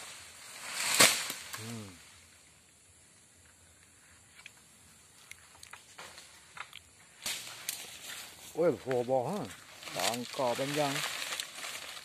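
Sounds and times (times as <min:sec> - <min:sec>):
sharp crash: 0:00.0 - 0:01.8
swish of leaves: 0:00.0 - 0:02.2, 0:07.2 - 0:12.0
man humming: 0:01.6 - 0:02.1.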